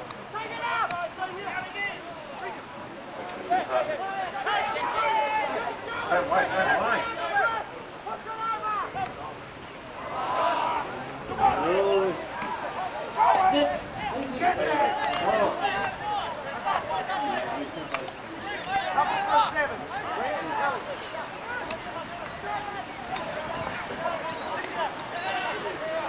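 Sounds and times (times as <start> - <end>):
people talking and calling out: 0.0 - 26.0.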